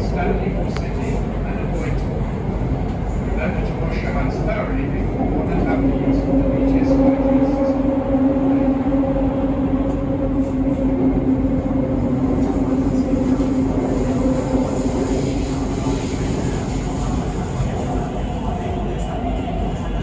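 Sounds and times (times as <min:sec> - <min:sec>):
train car rumble: 0:00.0 - 0:20.0.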